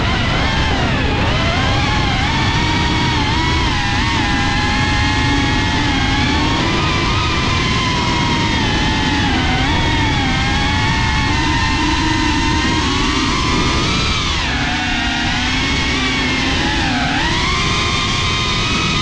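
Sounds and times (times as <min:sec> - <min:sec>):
drone motors whining: 0:00.0 - 0:19.0.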